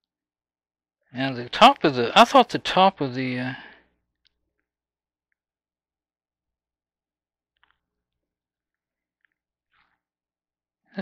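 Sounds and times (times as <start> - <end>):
man's voice: 1.2 - 3.7.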